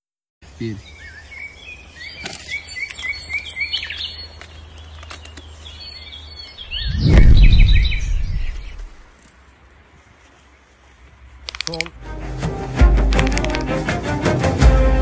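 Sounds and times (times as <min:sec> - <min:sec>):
small birds chirping: 0:00.4 - 0:12.0
loud low rumble: 0:06.7 - 0:09.0.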